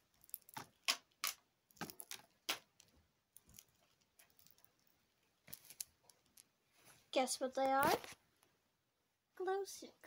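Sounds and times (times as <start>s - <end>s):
glow sticks crackling: 0.0s - 8.2s.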